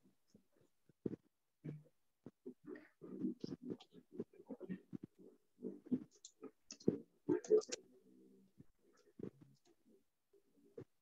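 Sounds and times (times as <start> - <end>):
low voice murmuring: 2.5 - 8.0.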